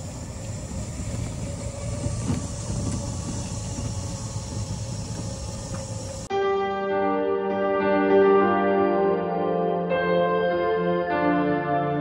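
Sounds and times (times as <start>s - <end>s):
faint steady whine: 0.0s - 6.3s
vehicle rumble: 0.0s - 6.3s.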